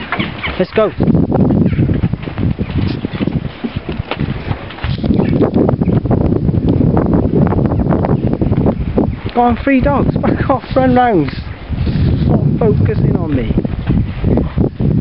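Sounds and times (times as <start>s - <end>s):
wind buffeting microphone: 0.0s - 15.0s
handheld camera knocks and scuffs: 1.6s - 5.7s.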